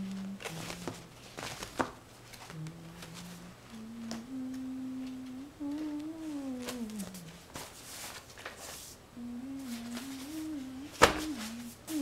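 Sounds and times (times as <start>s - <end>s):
person humming: 0.0s - 1.3s, 2.4s - 7.6s, 9.1s - 12.0s.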